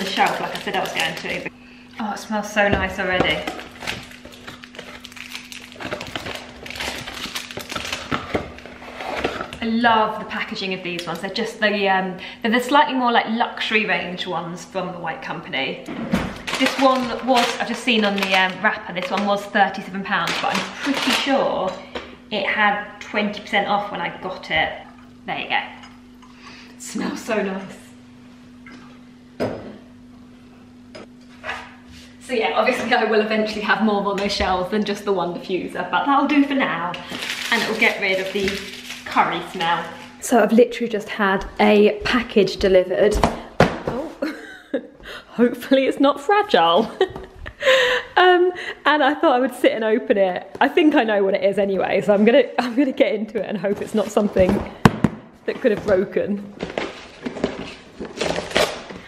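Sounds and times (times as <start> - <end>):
steady low hum: 0.0 - 59.0
cardboard box packaging rustling: 3.6 - 9.6.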